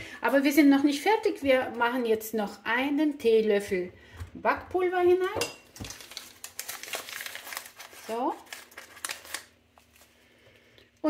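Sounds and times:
paper sachet crinkling: 0:05.8 - 0:10.3.

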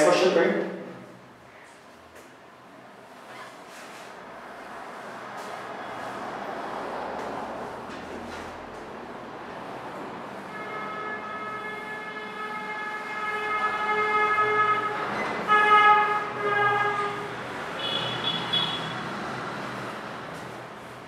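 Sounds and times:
duster wiping whiteboard: 0:03.1 - 0:21.0
vehicle horn blasts: 0:10.5 - 0:19.0.

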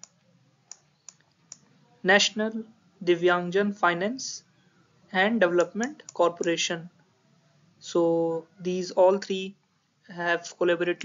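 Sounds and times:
faint sharp clicks: 0:00.0 - 0:01.7.

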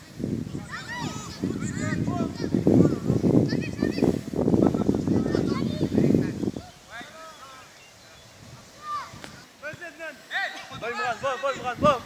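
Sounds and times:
spectators shouting encouragement: 0:00.6 - 0:04.2, 0:08.6 - 0:12.0.

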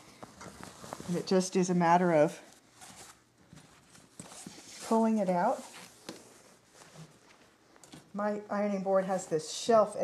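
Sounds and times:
fabric rustling: 0:00.0 - 0:08.2.

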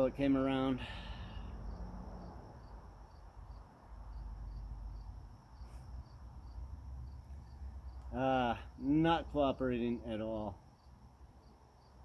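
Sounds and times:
insect chirping: 0:00.0 - 0:12.0.

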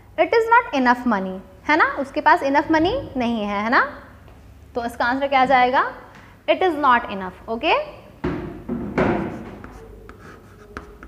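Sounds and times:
chalk tap: 0:09.0 - 0:11.0
chalk scratching on blackboard: 0:09.1 - 0:11.0.

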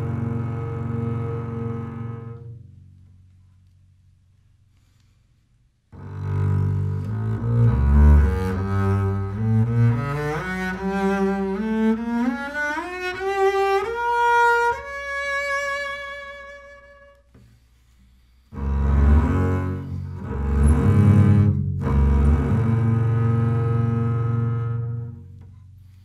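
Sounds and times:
bowed double bass notes: 0:00.0 - 0:04.3, 0:05.9 - 0:26.0.

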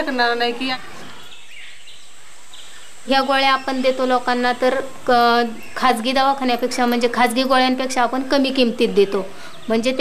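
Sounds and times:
room noise hiss: 0:00.0 - 0:10.0.

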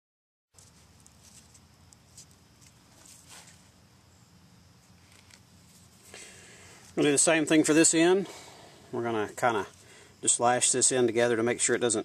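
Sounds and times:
cord rustling: 0:00.6 - 0:03.8.

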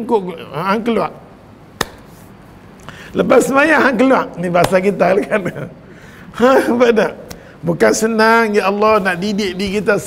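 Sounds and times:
sharp knock: 0:01.8 - 0:02.1.

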